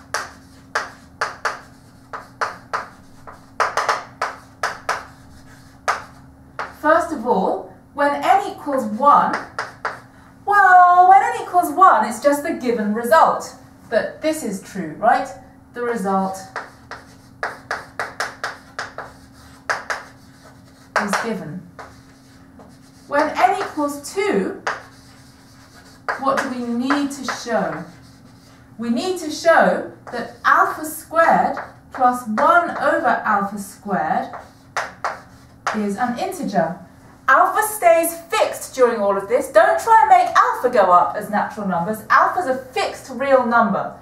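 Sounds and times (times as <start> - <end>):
chalk writing on blackboard: 0.0 - 6.8, 8.7 - 10.1, 16.4 - 28.6, 30.0 - 33.1, 34.2 - 35.8.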